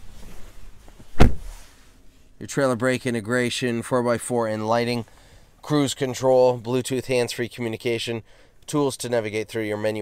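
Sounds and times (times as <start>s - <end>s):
faint handling rustle: 0.0s - 2.4s
loud thump: 1.1s - 1.6s.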